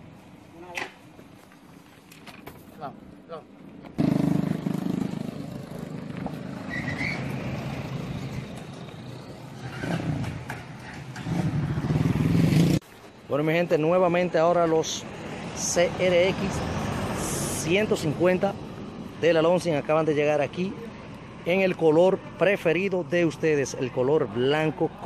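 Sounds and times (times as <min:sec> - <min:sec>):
vehicle engine running: 0:04.0 - 0:12.8
people talking: 0:21.5 - 0:25.0.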